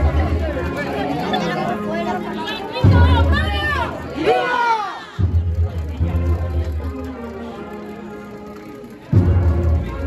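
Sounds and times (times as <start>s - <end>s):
cornet and drum band march: 0.0s - 4.4s, 5.2s - 10.0s
crowd chatter: 0.0s - 10.0s.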